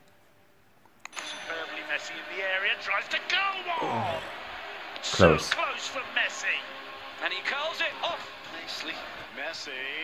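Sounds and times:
man talking: 3.7s - 4.4s, 5.0s - 5.6s.

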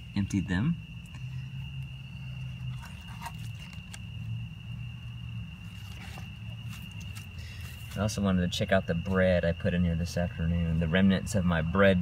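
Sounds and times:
high insect trill: 0.0s - 12.0s.

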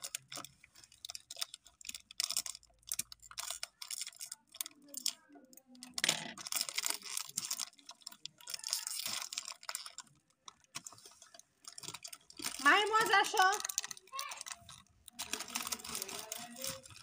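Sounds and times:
snack wrapper crinkling: 0.0s - 17.0s.

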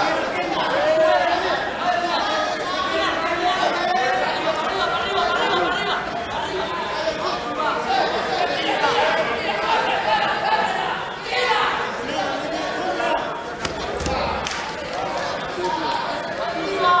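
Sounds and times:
crowd chattering: 0.0s - 17.0s.

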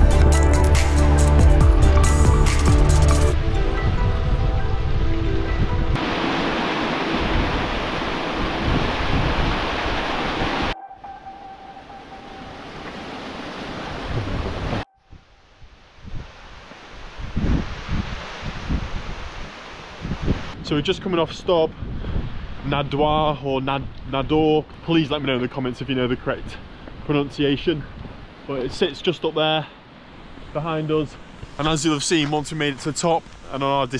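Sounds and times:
background music: 0.0s - 6.0s, 10.8s - 13.3s
wind buffeting microphone: 3.4s - 11.2s, 12.4s - 24.7s, 27.8s - 28.4s.

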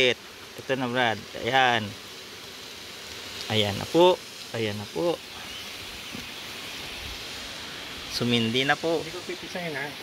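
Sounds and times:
food sizzling in a wok: 0.0s - 10.0s.

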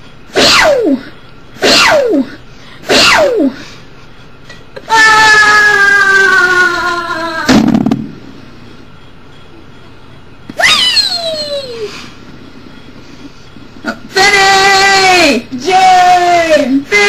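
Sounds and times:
girl screaming: 4.9s - 7.6s, 10.6s - 11.9s
high vocal squeal: 10.6s - 12.2s.

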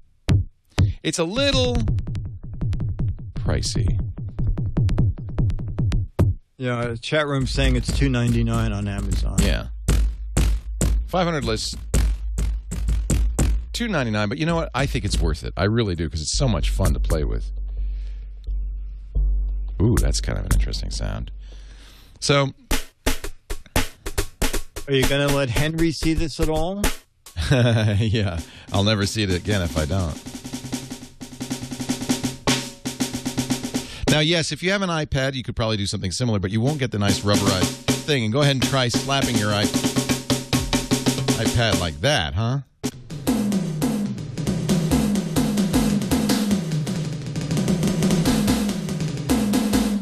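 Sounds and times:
electronic drum pad hits: 7.4s - 14.1s, 16.6s - 21.6s, 37.2s - 41.6s.

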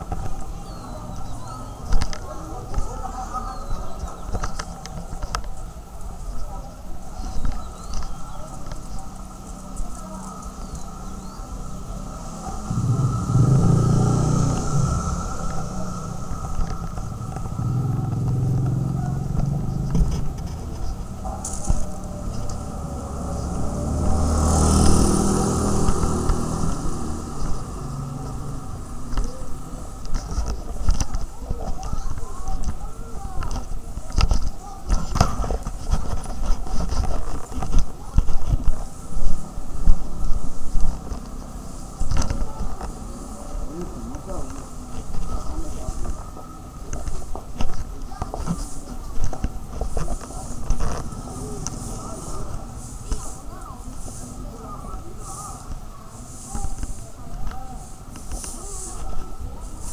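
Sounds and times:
background voices: 0.0s - 59.9s
motor vehicles passing: 0.0s - 59.9s.

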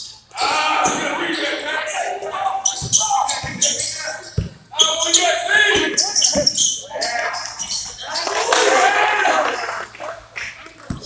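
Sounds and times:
court noise: 0.3s - 11.0s.

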